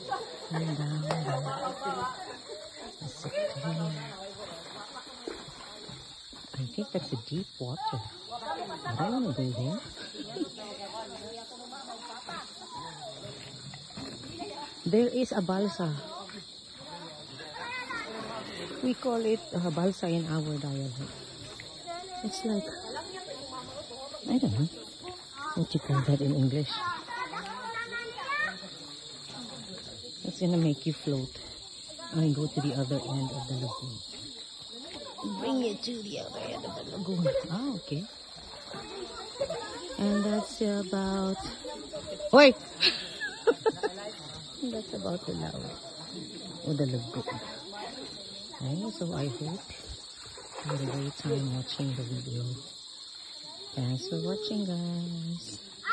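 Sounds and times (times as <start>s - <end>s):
distant people talking and calling out: 0.0s - 55.9s.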